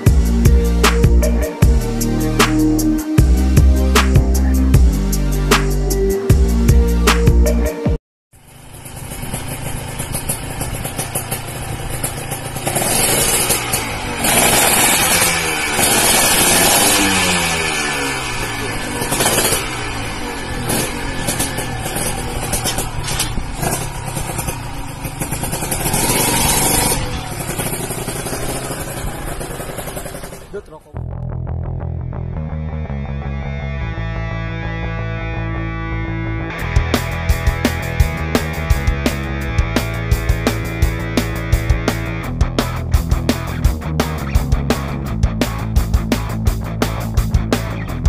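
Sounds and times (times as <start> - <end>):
motorcycle engine revving: 8.4 - 31.8, 36.5 - 48.0.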